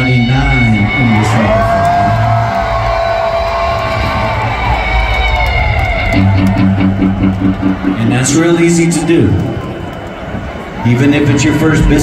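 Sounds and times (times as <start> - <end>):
electric guitar through pa: 4.2 - 10.2.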